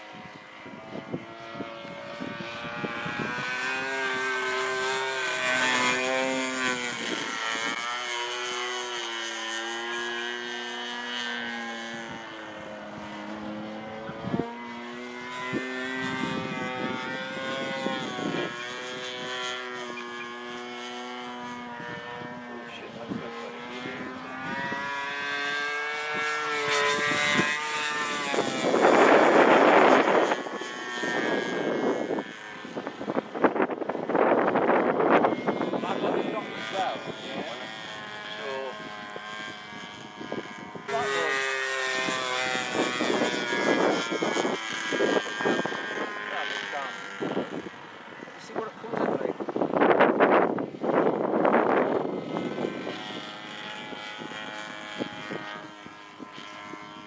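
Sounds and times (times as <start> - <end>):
model airplane engine and propeller: 0.0 - 57.0.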